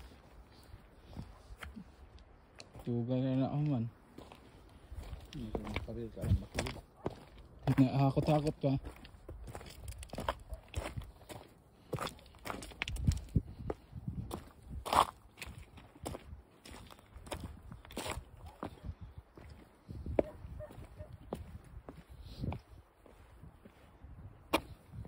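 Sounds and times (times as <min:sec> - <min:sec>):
footsteps on stone and gravel: 0:00.0 - 0:25.0.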